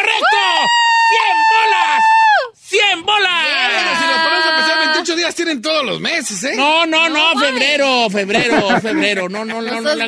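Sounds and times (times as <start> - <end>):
long high held shout: 0.0 - 5.1
people talking: 2.7 - 10.0
people laughing: 3.6 - 5.2, 7.6 - 10.0.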